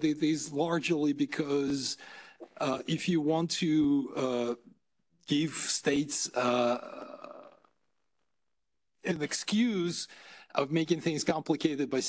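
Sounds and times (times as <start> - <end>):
man speaking: 0.0 - 7.6, 9.0 - 12.0.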